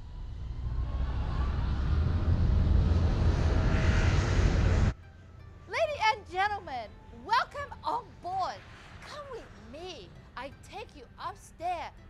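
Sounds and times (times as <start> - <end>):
jet airliner engine rumble: 0.0 - 5.0.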